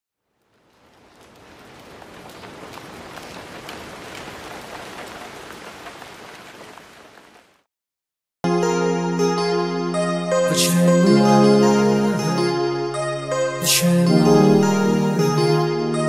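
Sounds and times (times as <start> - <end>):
raindrop ticks: 0.2 - 7.6
steady rain hiss: 0.2 - 7.6.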